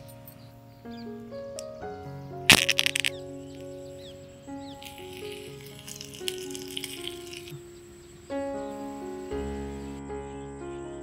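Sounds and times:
background music: 0.0s - 11.0s
leaves crackling in hot oil: 2.5s - 3.7s, 4.7s - 7.6s
oil sizzling with small pops: 4.8s - 7.6s.

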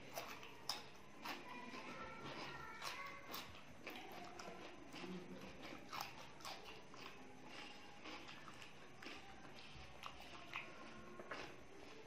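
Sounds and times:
chewing and lip smacks: 0.0s - 12.0s.

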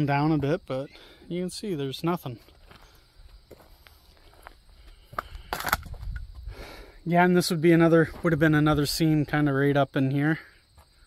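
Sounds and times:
footsteps: 2.3s - 6.6s, 8.0s - 9.4s
crunches: 2.4s - 6.5s.

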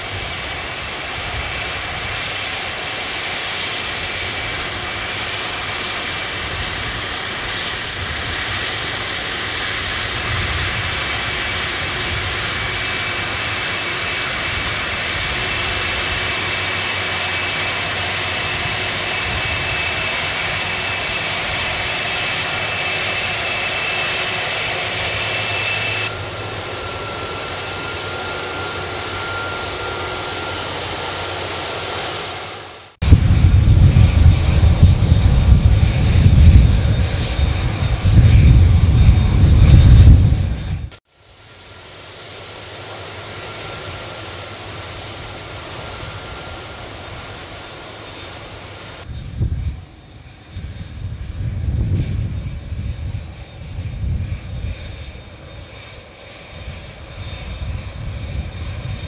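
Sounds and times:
high engine whine: 0.0s - 59.0s
jet engine rush: 0.0s - 59.0s.

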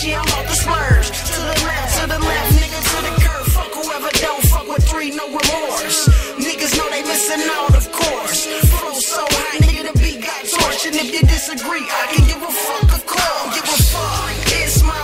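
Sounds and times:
deep bass kick drums: 0.0s - 3.7s, 4.4s - 5.0s, 13.8s - 15.0s
rapping over a beat: 0.0s - 15.0s.

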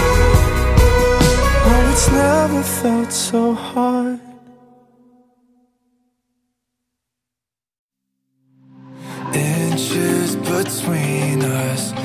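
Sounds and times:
pop song: 0.0s - 4.6s, 8.9s - 12.0s.

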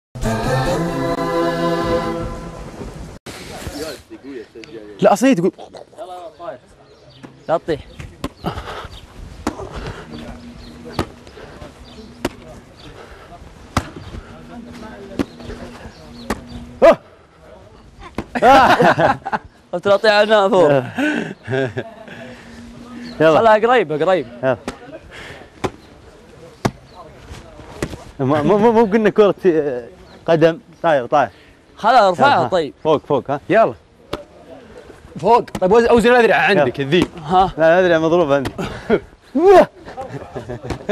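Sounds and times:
sung theme music: 0.2s - 3.2s.

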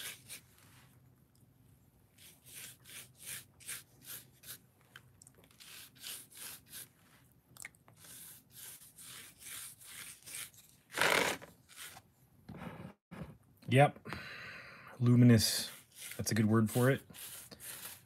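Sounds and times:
paintbrush scrubbing foam: 0.0s - 0.9s, 2.1s - 4.6s, 5.5s - 7.2s, 8.0s - 12.0s, 15.2s - 18.0s.

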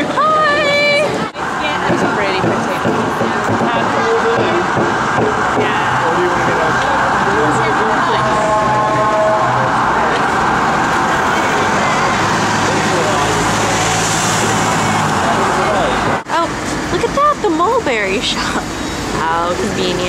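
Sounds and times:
bus engine humming: 0.0s - 20.0s
road traffic rushing: 0.0s - 20.0s
voices: 0.0s - 20.0s.

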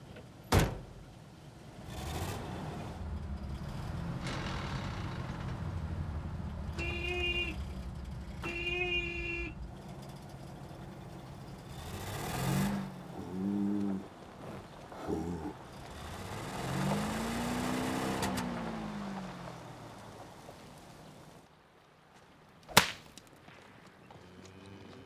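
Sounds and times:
vehicle door slamming: 0.5s - 1.0s
truck engine running: 1.0s - 21.4s
truck horn honking: 6.4s - 9.9s
cow lowing: 13.0s - 15.7s, 24.1s - 25.0s.

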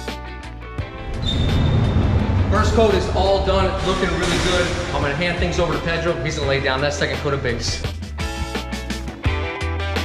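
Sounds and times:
low rumbling noise: 0.8s - 7.2s
guitar-led background music: 2.9s - 10.0s.

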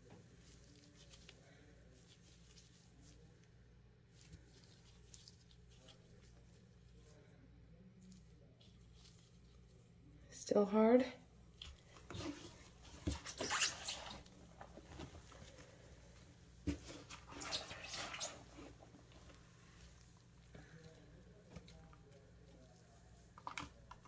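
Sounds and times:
hand rustling moist bedding: 0.0s - 7.2s.

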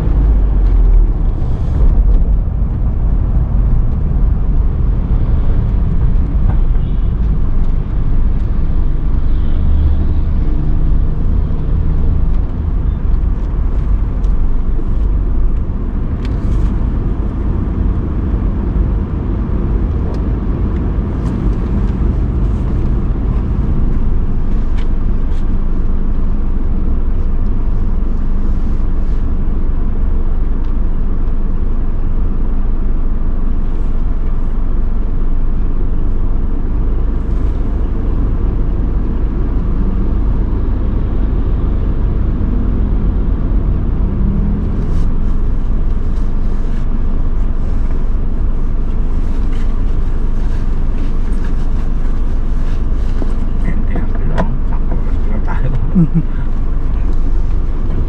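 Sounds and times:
car engine rumble: 0.0s - 58.0s
road noise: 0.0s - 58.0s.

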